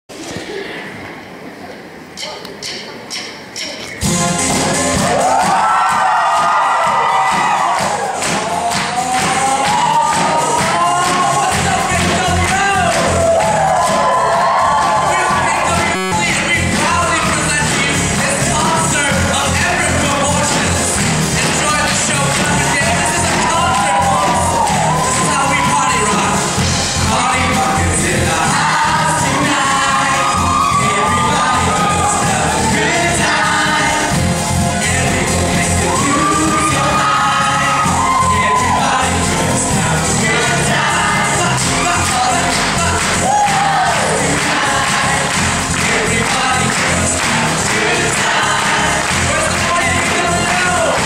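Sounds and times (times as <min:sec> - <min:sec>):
amplified backing track beat: 0:02.0 - 0:51.0
choir singing dance-pop: 0:04.0 - 0:51.0.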